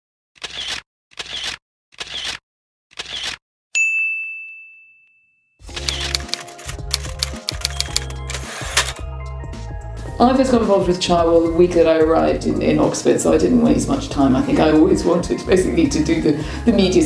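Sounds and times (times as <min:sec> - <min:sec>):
bell ding: 0:03.8 - 0:05.5
music with bass and clicking beat: 0:05.7 - 0:09.7.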